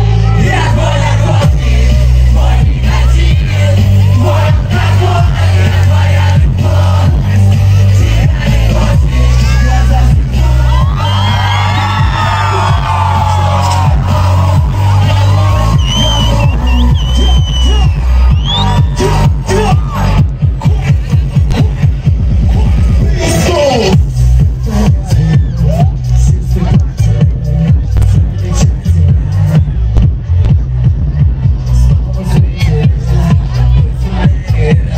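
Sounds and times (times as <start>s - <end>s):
pop music with heavy bass beat: 0.0s - 34.9s
vocals: 0.0s - 34.9s.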